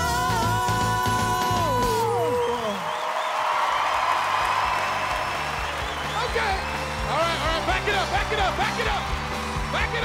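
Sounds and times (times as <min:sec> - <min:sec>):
live band music with drum beat: 0:00.0 - 0:02.4, 0:05.1 - 0:10.0
audience cheering and applauding: 0:00.0 - 0:10.0.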